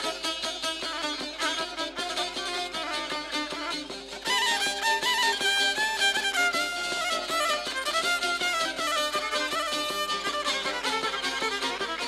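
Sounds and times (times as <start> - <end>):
fiddle sliding melody: 0.0 - 12.0
strummed lute rhythm: 0.0 - 12.0.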